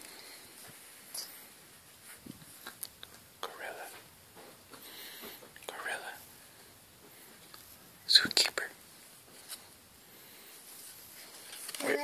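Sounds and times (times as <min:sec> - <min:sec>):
child whispering: 0:03.4 - 0:04.0, 0:05.7 - 0:06.2, 0:11.7 - 0:12.0.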